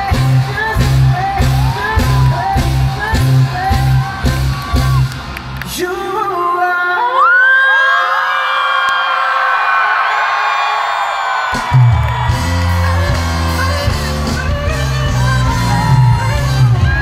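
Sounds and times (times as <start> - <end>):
live pop band with singer: 0.0 - 10.4, 11.0 - 17.0
crowd whooping: 0.0 - 17.0.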